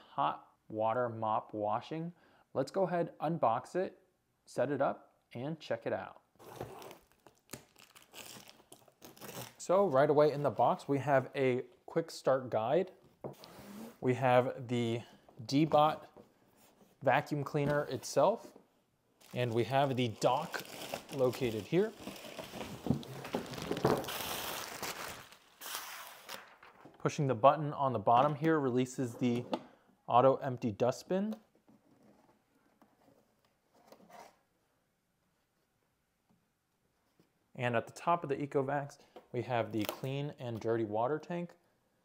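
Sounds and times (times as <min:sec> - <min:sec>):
cardboard crinkling and scraping: 0:19.2 - 0:26.9.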